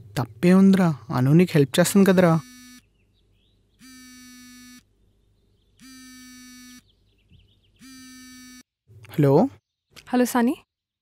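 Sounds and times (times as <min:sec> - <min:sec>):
bird chirps: 0:02.2 - 0:04.0, 0:04.9 - 0:08.3
telephone ringback tone: 0:03.8 - 0:04.8, 0:05.8 - 0:06.8.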